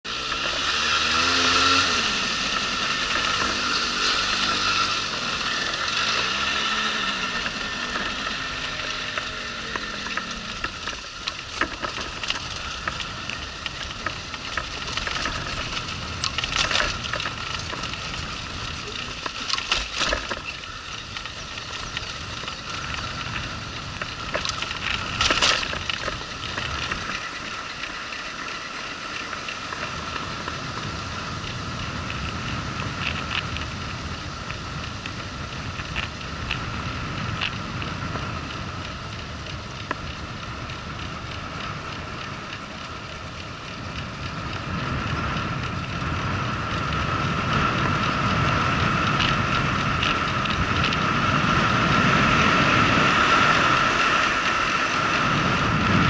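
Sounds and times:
moped engine: 0:00.0 - 0:56.0
rushing wind noise: 0:00.0 - 0:56.0.

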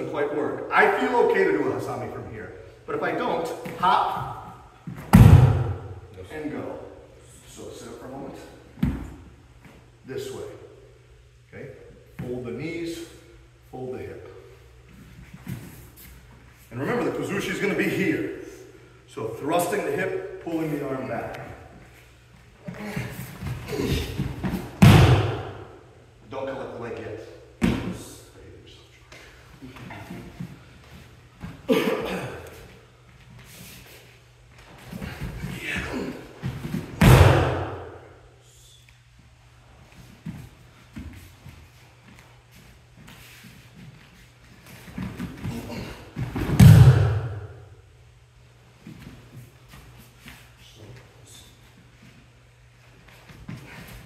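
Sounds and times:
bodies landing on foam mats: 0:04.8 - 0:06.0, 0:22.7 - 0:25.8, 0:34.8 - 0:38.0, 0:44.8 - 0:47.6.

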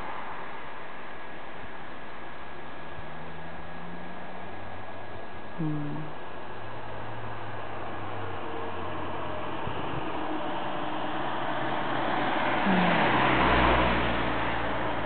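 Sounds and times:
steady outdoor hiss: 0:00.0 - 0:15.0.

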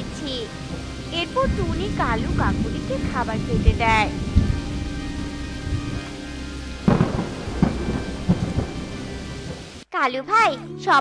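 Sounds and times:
heavy rain: 0:00.0 - 0:09.8
thunder rumbling: 0:00.0 - 0:09.8
thunderclap: 0:00.0 - 0:09.8.

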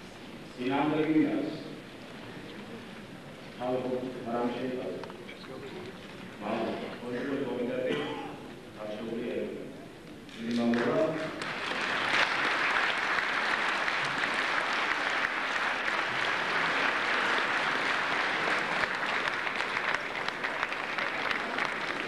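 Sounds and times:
audience applauding: 0:10.8 - 0:22.0.

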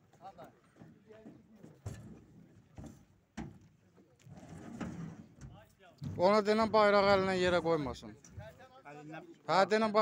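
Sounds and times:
faint knocks and thumps: 0:00.7 - 0:07.6.

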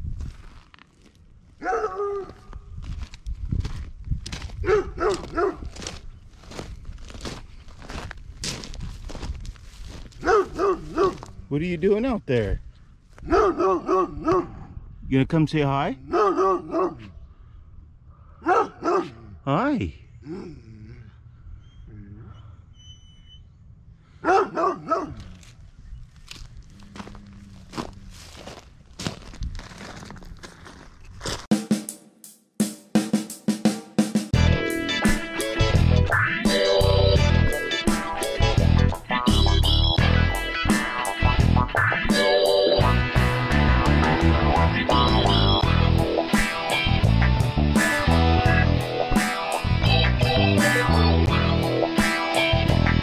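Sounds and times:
footsteps on gravel: 0:00.0 - 0:11.4, 0:25.2 - 0:31.5
dog barking: 0:01.6 - 0:02.4, 0:04.6 - 0:05.6, 0:10.2 - 0:11.2, 0:13.3 - 0:14.6, 0:16.1 - 0:17.1, 0:18.4 - 0:19.2, 0:24.2 - 0:25.2.

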